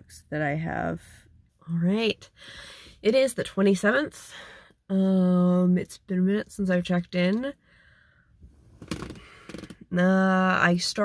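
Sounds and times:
person breathing softly: 2.3 - 3.0, 7.6 - 8.4.

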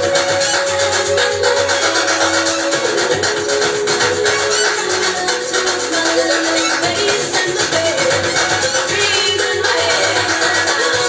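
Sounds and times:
dance music with shaker and hi-hat: 0.0 - 11.0.

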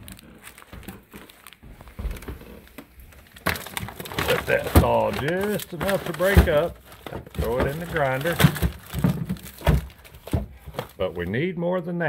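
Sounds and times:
frozen packages clunking together: 0.0 - 11.3.

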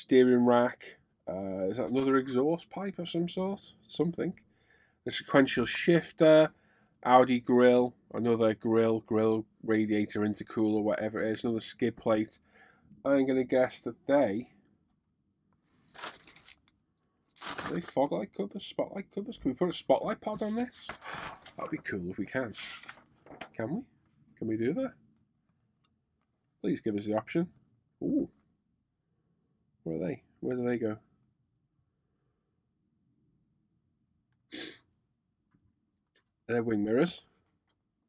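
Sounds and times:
plastic bag crinkling: 15.8 - 16.7, 17.3 - 18.0, 20.4 - 21.8
sharp nose sniff: 34.5 - 34.8.

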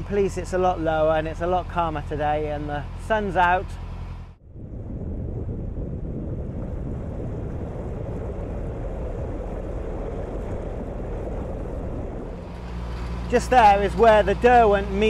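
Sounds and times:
moving water: 0.0 - 15.0
wind buffeting microphone: 4.4 - 15.0.

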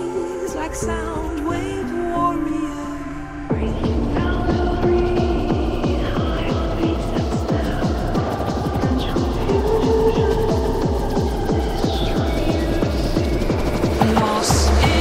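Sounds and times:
held synth chords: 0.0 - 15.0
distorted kick drums: 3.5 - 15.0.

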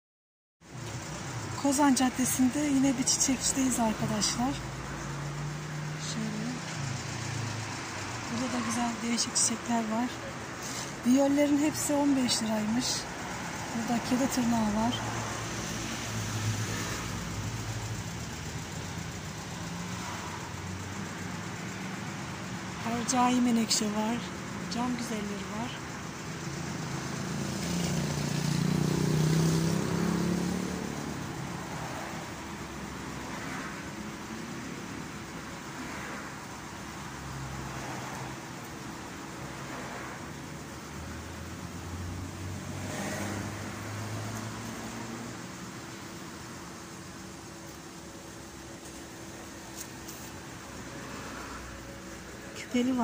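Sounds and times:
vehicles passing: 0.6 - 53.0.

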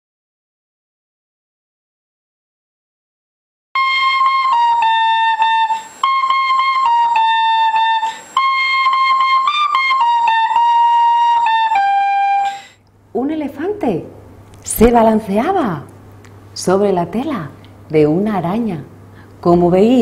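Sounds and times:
high flute-like melody: 3.8 - 12.8
woman's voice: 13.2 - 15.9, 16.6 - 20.0.

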